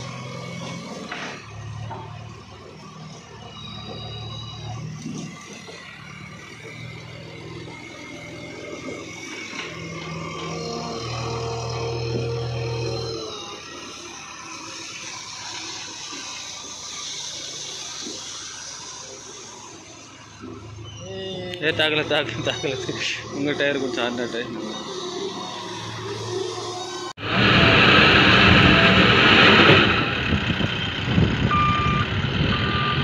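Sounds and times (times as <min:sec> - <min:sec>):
backhoe diesel engine running: 0:00.0 - 0:33.0.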